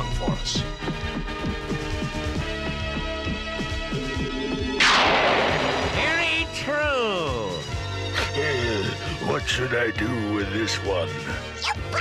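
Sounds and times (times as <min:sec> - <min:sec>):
background music: 0:00.0 - 0:12.0
cartoon blast sound effect: 0:04.8 - 0:06.2.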